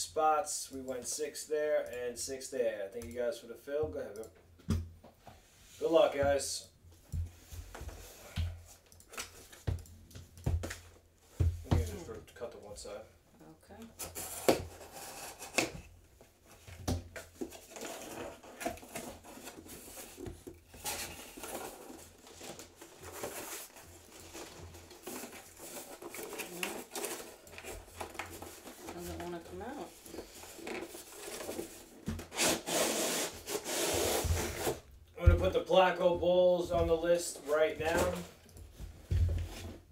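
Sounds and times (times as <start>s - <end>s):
cardboard scraping: 14.0s - 15.8s, 16.5s - 34.8s
blade cutting tape and cardboard: 32.2s - 34.8s.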